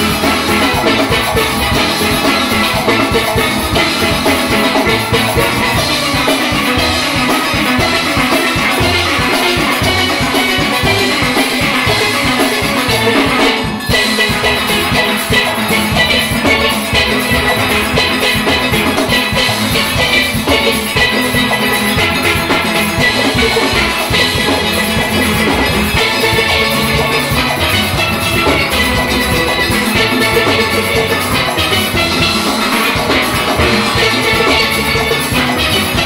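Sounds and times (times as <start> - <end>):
drums keeping a steady beat: 0.0 - 36.0.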